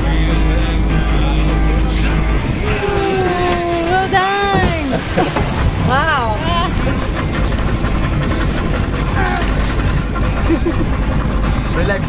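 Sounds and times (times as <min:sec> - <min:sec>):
boat motor drone: 0:00.0 - 0:12.0
rushing water: 0:00.0 - 0:12.0
wind: 0:00.0 - 0:12.0
woman yelling: 0:02.6 - 0:05.0.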